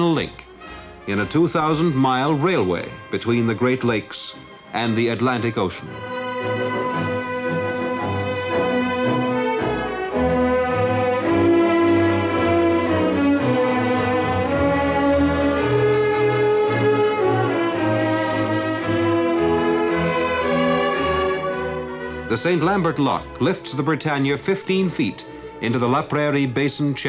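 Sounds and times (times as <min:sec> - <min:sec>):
orchestral strings and brass: 0:00.0 - 0:27.0.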